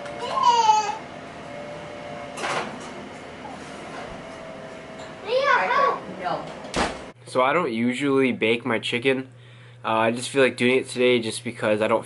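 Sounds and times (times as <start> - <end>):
faint steady hum: 4.3 - 12.0.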